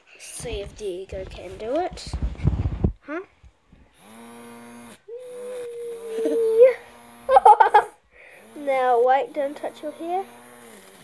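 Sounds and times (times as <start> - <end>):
small fan motor whirring: 3.9 - 11.0.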